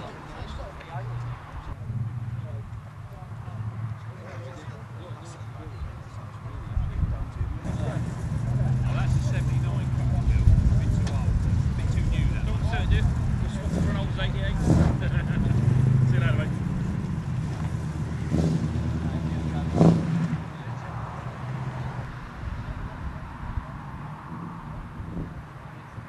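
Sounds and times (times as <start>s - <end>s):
voices: 0.0s - 26.0s
car engine idling: 1.7s - 19.8s.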